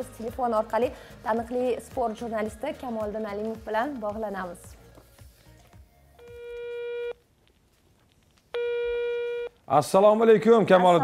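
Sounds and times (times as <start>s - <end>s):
telephone ringback tone beeps: 6.2s - 7.2s, 8.6s - 9.5s.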